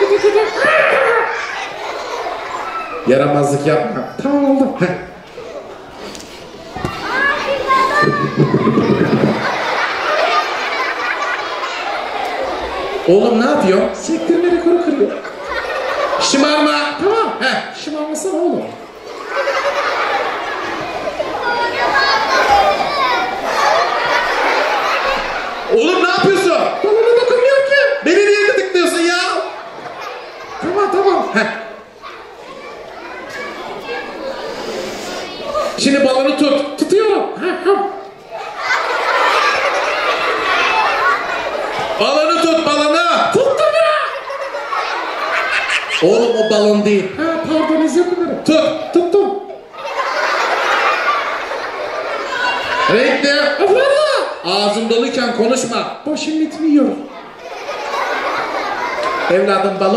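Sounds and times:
children calling out and chattering: 0.0s - 59.9s.

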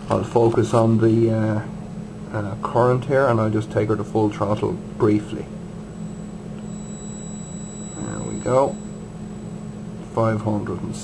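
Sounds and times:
electrical hum: 0.0s - 11.0s
thin high whine: 5.8s - 10.2s.

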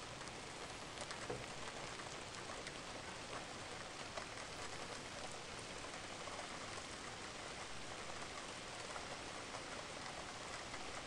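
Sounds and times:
raindrops ticking close by: 0.0s - 11.0s
steady rain falling: 0.0s - 11.0s.

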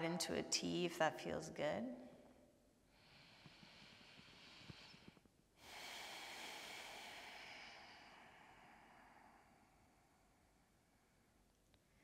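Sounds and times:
slow breathing: 2.8s - 12.0s.

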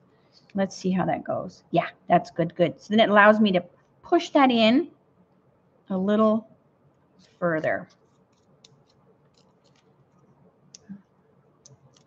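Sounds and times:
fingers handling paper sheet: 7.2s - 10.3s.

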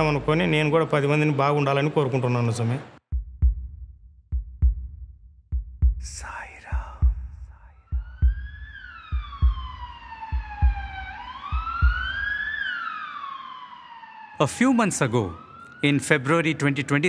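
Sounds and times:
heartbeat thumps: 3.1s - 12.4s
siren-like wail: 7.7s - 17.0s.

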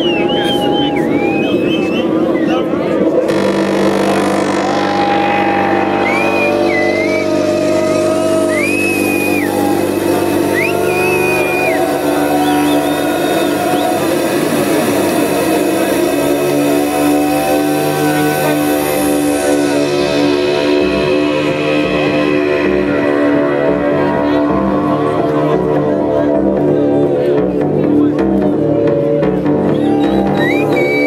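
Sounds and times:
high gliding whistle tones: 0.0s - 2.7s, 3.3s - 15.9s, 29.7s - 31.0s
crowd voices: 0.0s - 31.0s
electronic club music: 3.1s - 31.0s.

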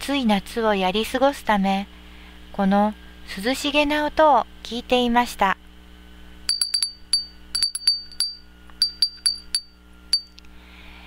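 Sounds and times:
glass wind chime ringing: 6.5s - 10.4s.

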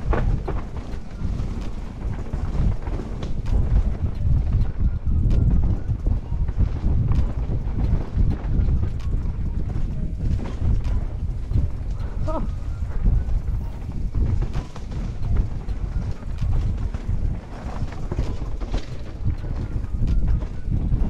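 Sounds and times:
bike tyres rumbling on dirt: 0.0s - 21.0s
wind buffeting microphone: 0.0s - 21.0s.

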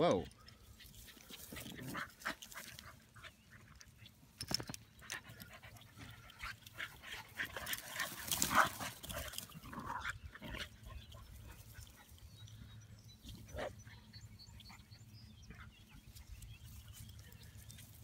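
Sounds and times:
dogs playing and wrestling: 0.0s - 18.0s.

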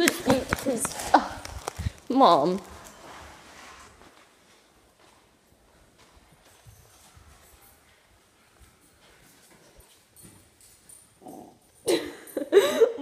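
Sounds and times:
faint knocks and shuffling: 0.0s - 11.8s.

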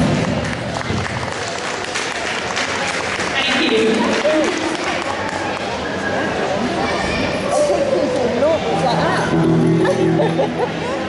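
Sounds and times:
voices talking in hall: 0.2s - 11.0s
low amplified instrument note: 8.8s - 11.0s.

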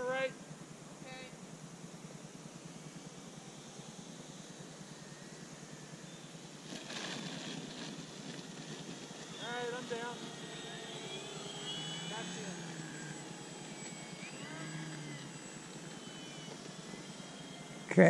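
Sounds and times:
model airplane motor whine: 0.0s - 18.0s.

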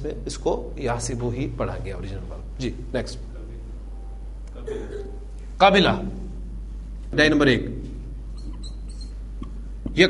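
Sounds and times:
steady low hum: 0.0s - 10.0s
faint high-pitched squeaks: 8.3s - 9.2s.

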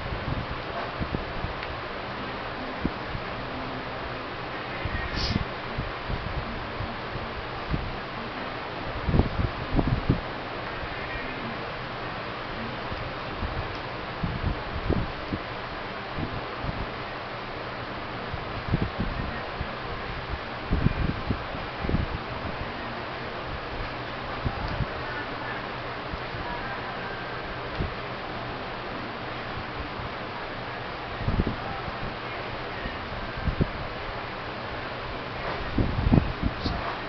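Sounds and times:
air buffeting microphone: 0.0s - 37.0s
electric fan hissing: 0.0s - 37.0s.

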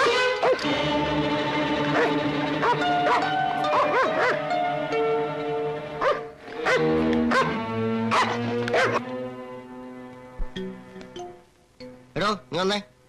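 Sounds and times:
film score music: 0.0s - 12.8s
dog barking sharply: 6.0s - 9.0s.

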